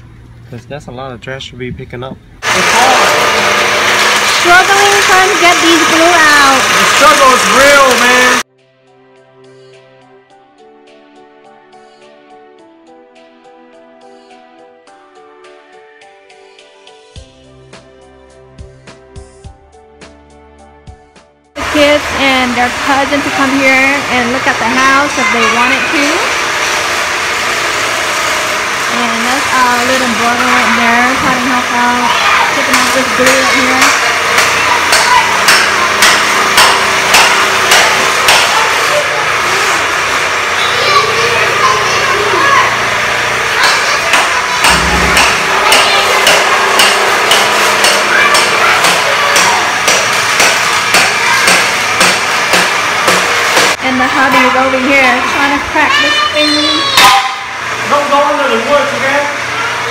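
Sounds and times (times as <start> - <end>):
floor-stripping machine motor hum: 2.4 - 8.4, 21.6 - 55.6
hammer blows on concrete: 32.6 - 38.7, 43.6 - 53.8.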